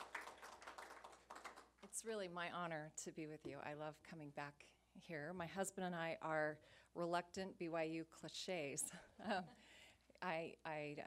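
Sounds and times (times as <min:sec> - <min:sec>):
audience clapping: 0:00.0 - 0:01.9
woman speaking: 0:01.8 - 0:09.6, 0:10.2 - 0:11.0.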